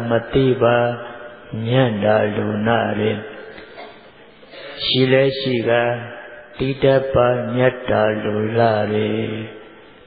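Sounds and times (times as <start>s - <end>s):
man chanting: 0.0s - 9.7s.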